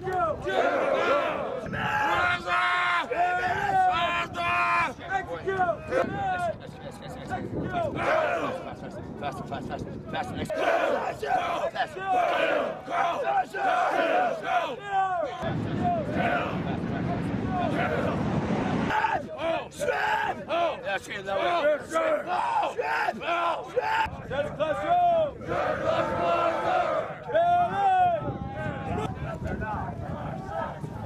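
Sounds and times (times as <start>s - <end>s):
drill instructors yelling: 0.0s - 6.5s, 7.7s - 8.7s, 10.5s - 16.6s, 18.9s - 29.2s
recruits shouting battle cries: 0.0s - 6.5s, 7.6s - 8.7s, 10.4s - 18.2s, 18.8s - 30.8s.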